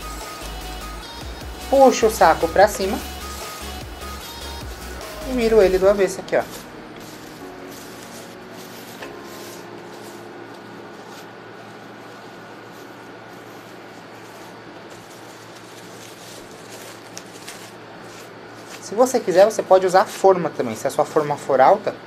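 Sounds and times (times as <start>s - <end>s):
steady background hiss: 0.0s - 22.0s
plastic bag crinkling: 4.0s - 20.2s.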